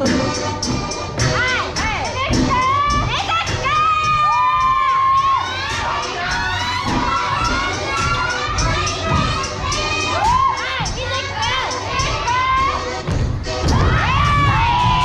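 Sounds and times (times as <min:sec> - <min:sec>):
thumping low beat: 0:00.0 - 0:15.0
crowd of children cheering: 0:03.8 - 0:10.9, 0:13.7 - 0:15.0.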